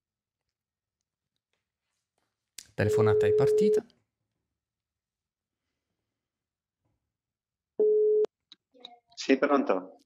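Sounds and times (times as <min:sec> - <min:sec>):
phone ringback beep: 0:07.8 - 0:08.3.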